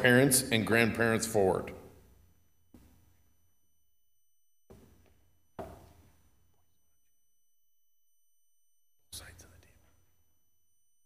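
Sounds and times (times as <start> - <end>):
person whispering: 9.1 - 10.0.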